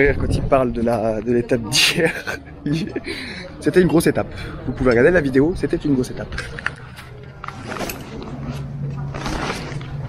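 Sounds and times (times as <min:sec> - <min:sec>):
people talking: 0:00.0 - 0:09.8.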